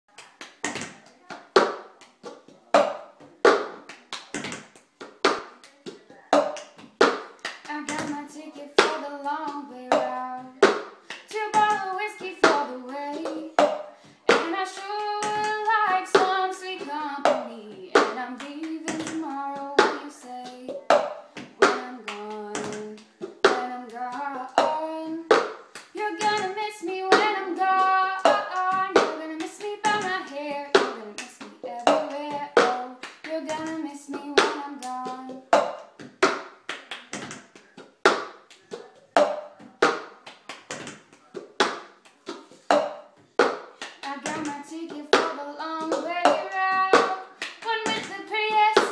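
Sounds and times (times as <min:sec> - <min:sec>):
hand claps: 0:00.1 - 0:48.9
cup tapping on a tabletop: 0:06.4 - 0:07.2, 0:35.5 - 0:36.4, 0:40.8 - 0:44.5
woman singing: 0:07.6 - 0:35.6, 0:44.0 - 0:48.9.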